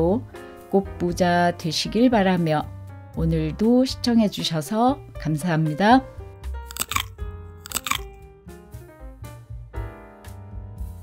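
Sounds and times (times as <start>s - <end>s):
short crunching noises: 6.7s - 8.1s.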